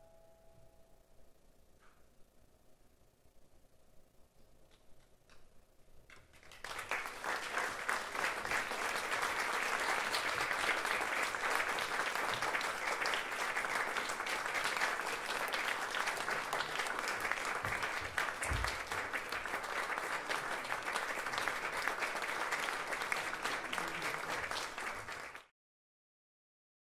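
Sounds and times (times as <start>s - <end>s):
audience applauding: 6.1s - 25.5s.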